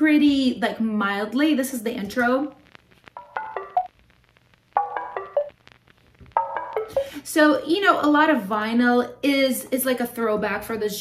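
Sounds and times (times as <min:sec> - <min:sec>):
faint vinyl crackle: 0:00.0 - 0:11.0.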